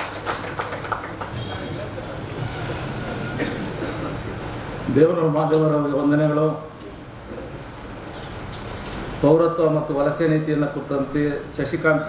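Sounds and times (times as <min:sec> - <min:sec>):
audience applauding: 0:00.0 - 0:01.6.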